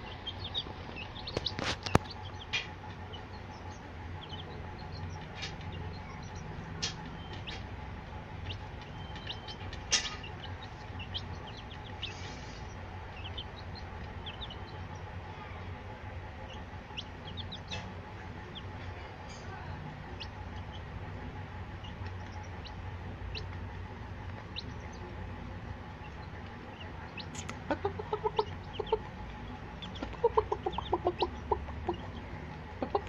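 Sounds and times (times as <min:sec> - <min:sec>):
chicks pecking on steel plate: 0:00.0 - 0:33.0
chicks peeping: 0:00.0 - 0:33.0.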